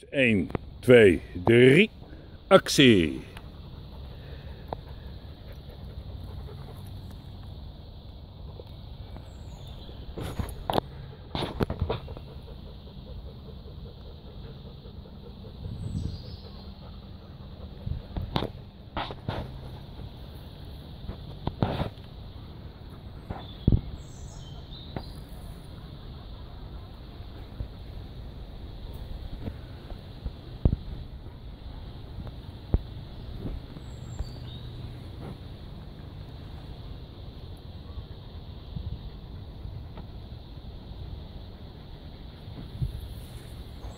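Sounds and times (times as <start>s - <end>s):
steady low rumble: 12.0s - 43.9s.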